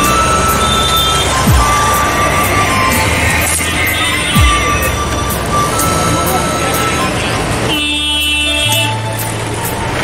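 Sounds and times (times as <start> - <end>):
street din: 0.0 - 10.0
vehicle horn: 7.2 - 9.1.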